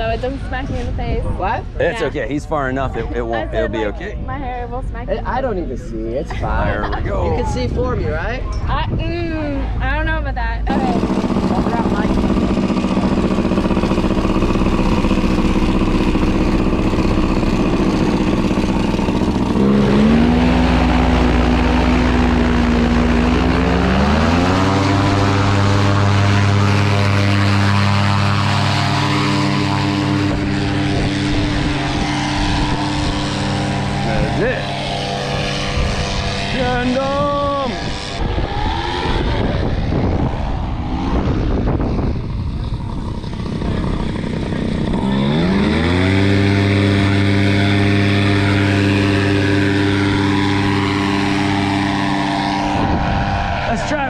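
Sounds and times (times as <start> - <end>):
paramotor engine and propeller: 0.0 - 54.0.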